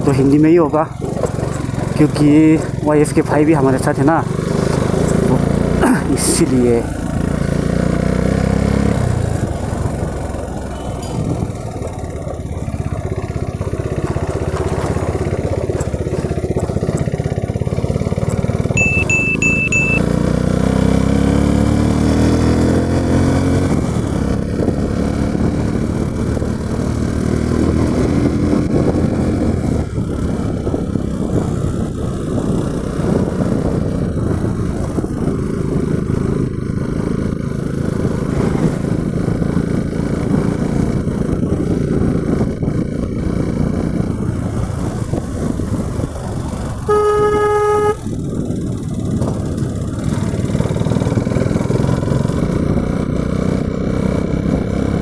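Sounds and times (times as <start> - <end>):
motorcycle engine revving: 0.0 - 55.0
short high beeps: 18.8 - 20.1.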